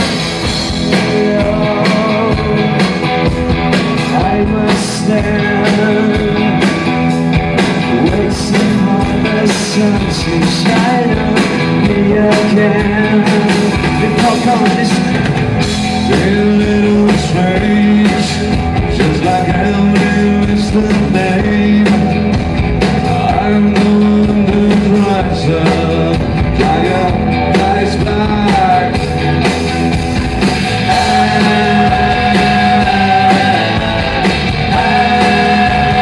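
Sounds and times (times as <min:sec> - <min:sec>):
drum kit beat: 0:00.0 - 0:36.0
electric guitars: 0:00.0 - 0:36.0.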